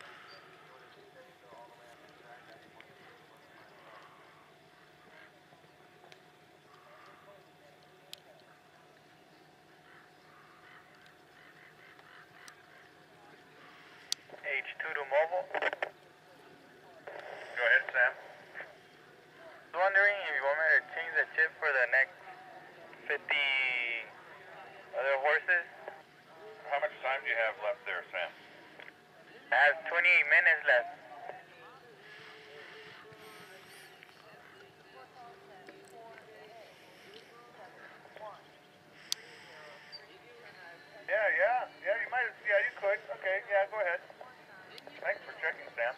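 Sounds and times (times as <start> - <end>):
distant voices talking: 0.0 - 45.9
faint steady tone: 0.0 - 45.9.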